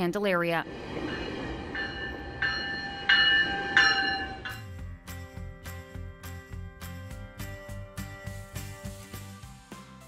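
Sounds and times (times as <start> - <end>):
train rumble: 0.4 - 5.2
high ringing sound: 0.6 - 4.8.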